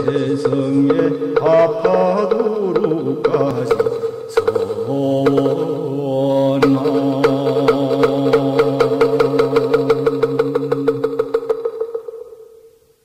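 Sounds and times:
held chanted tone: 0.0s - 11.3s
sharp percussion strikes: 0.0s - 12.8s.

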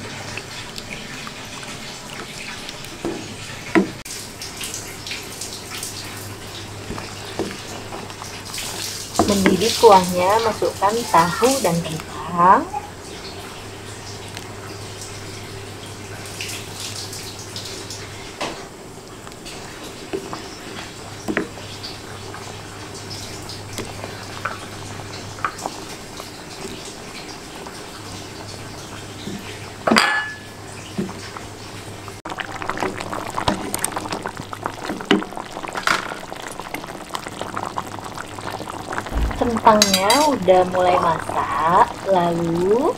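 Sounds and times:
curry bubbling in a wok: 30.7s - 42.9s
sharp knock: 39.1s - 39.6s
steady low hum: 39.1s - 41.5s.

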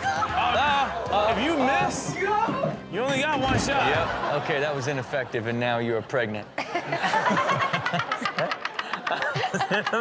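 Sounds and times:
group laughing: 3.7s - 10.0s.

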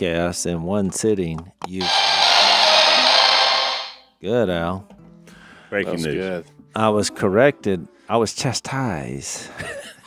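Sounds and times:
loud steady hiss: 1.8s - 4.0s.

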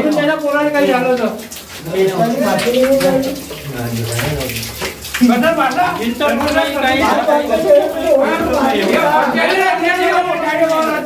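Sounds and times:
men talking in echoing room: 0.0s - 11.0s
water running from tap: 0.0s - 11.0s.

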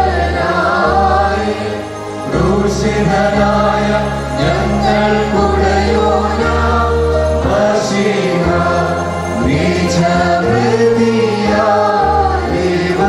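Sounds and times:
choir singing a hymn: 0.0s - 13.0s
sustained low notes: 0.0s - 13.0s.

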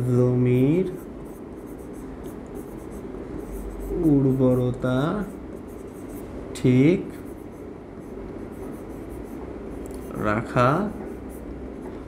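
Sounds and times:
marker pen scratching on whiteboard: 0.4s - 6.3s, 7.1s - 12.0s.

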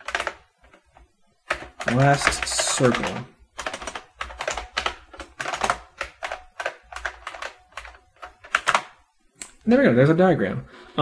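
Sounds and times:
computer keyboard typing: 0.0s - 9.1s.

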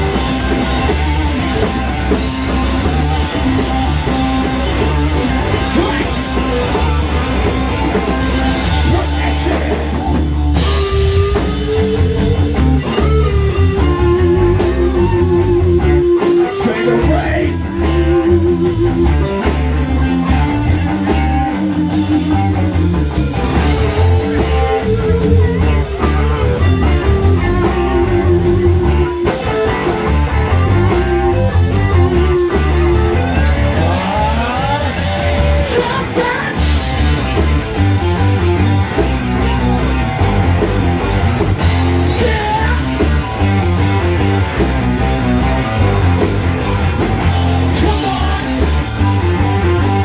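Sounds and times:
bass guitar: 0.0s - 50.0s
drum kit with cymbals: 0.0s - 50.0s
electric guitar lead notes: 0.0s - 50.0s.

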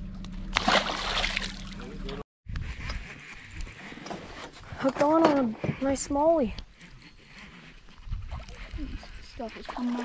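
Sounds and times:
water splashing: 0.5s - 2.2s, 8.3s - 10.0s.

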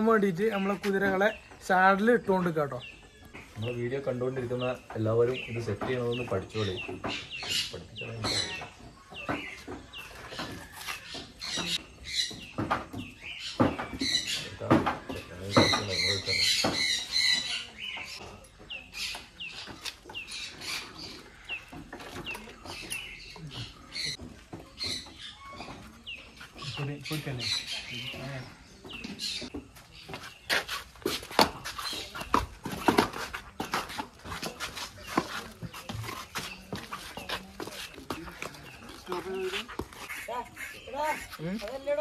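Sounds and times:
birds calling: 0.0s - 42.0s.

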